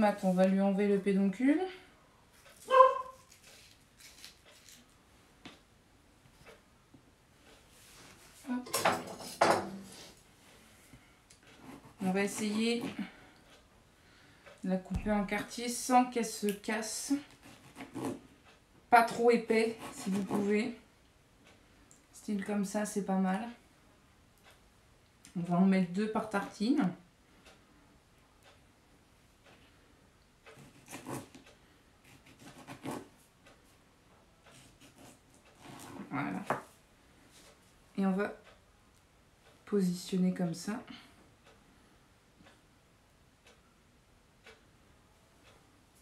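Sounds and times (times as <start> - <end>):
knife cutting tomato on plastic board: 11.6 - 13.2, 17.0 - 18.3, 19.0 - 20.7, 30.5 - 33.2, 34.5 - 36.7.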